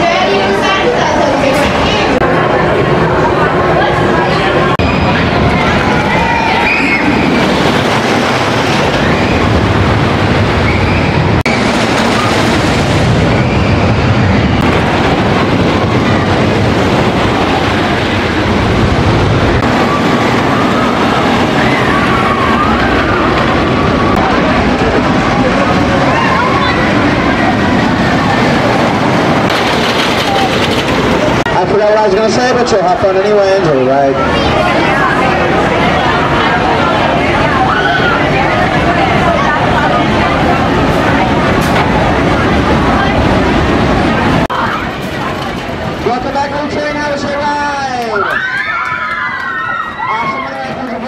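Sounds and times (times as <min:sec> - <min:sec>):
people's voices: 0:00.0 - 0:51.0
roller coaster train on track: 0:00.0 - 0:51.0.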